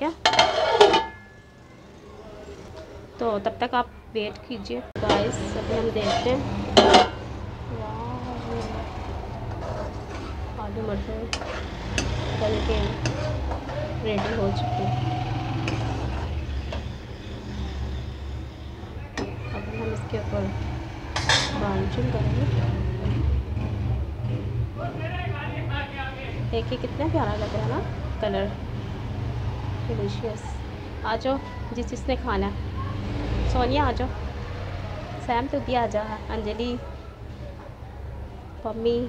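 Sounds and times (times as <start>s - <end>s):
metal lid clattering on pot: 0.2s - 1.3s, 6.0s - 7.2s, 21.2s - 21.6s
spatula stirring thick curry: 8.9s - 10.6s, 11.2s - 16.7s.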